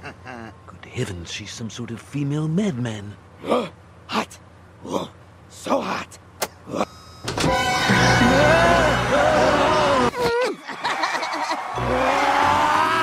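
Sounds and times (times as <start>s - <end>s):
background music: 7.4s - 10.1s.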